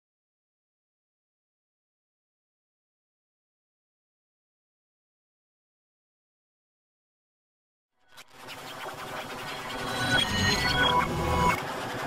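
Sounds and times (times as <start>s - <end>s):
distorted logo jingle: 8.2s - 11.7s
stepped electronic tones: 8.5s - 11.6s.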